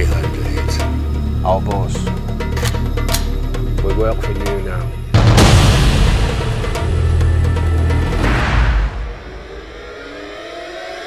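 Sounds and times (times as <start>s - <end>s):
rising whine riser: 6.7s - 11.0s.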